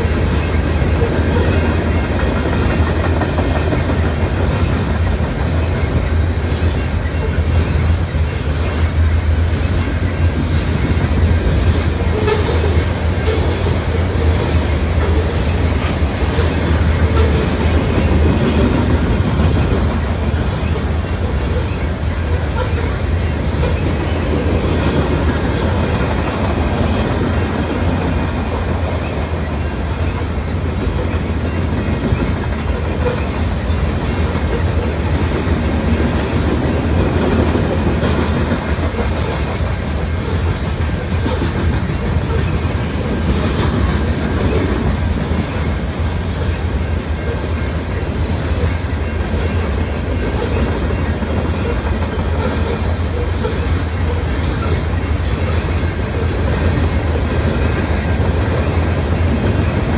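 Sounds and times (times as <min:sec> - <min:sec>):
wheels clicking over rail joints: 0:00.0 - 0:09.0
train wheels rumbling on rail: 0:00.0 - 0:59.9.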